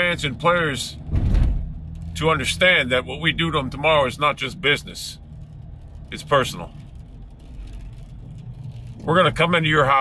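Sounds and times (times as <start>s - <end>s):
car cabin engine rumble: 0.0s - 10.0s.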